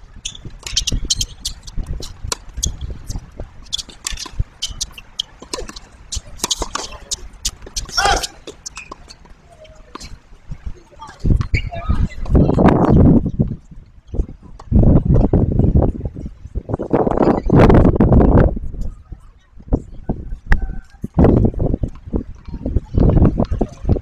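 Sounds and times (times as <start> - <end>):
tennis ball bouncing and struck: 3.7 - 9.3
distant voice calling: 7.9 - 8.4.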